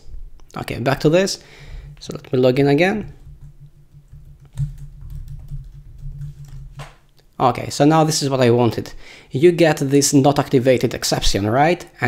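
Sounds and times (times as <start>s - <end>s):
computer keyboard keys clicking: 3.4s - 6.9s.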